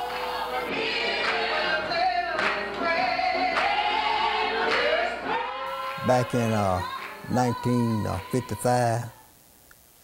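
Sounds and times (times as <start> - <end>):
choir singing gospel: 0.0 - 9.3.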